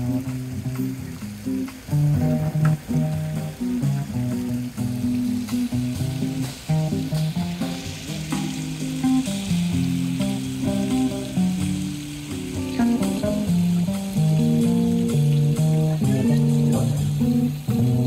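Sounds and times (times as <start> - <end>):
drum kit: 0.0 - 18.0
electric guitar single notes: 0.0 - 18.0
plucked double bass: 0.0 - 18.0
steady high hiss: 0.0 - 18.0.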